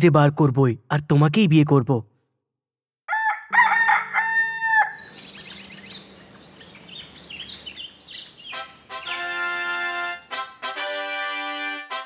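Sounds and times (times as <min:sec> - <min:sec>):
rooster crowing: 0:03.1 - 0:05.2
small birds chirping: 0:04.8 - 0:09.2.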